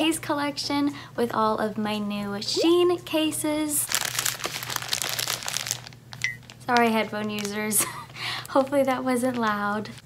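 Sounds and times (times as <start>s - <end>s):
plastic packaging crinkling: 3.9s - 10.0s.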